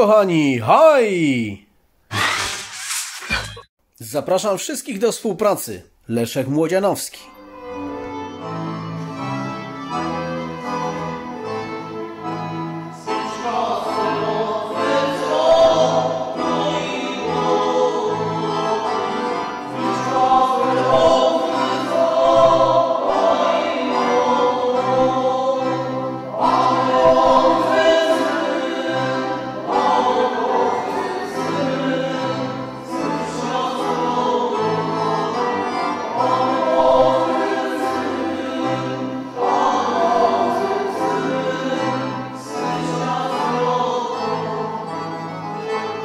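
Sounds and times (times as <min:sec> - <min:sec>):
group singing slow hymn-like song: 0:13.0 - 0:45.2.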